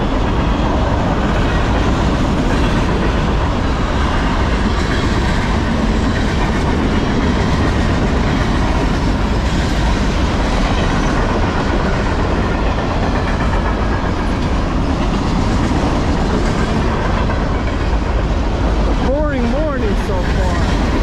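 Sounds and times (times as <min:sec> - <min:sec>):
steel wheels rolling on rails: 0:00.0 - 0:21.0.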